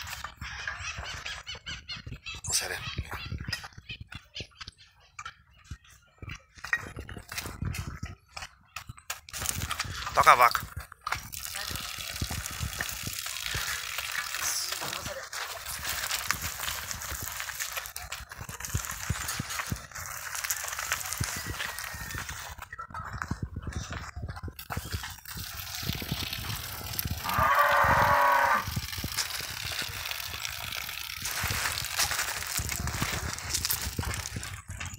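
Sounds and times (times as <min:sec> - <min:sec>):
hooves on gravel: 0:00.0 - 0:34.9
cow mooing: 0:27.2 - 0:28.7.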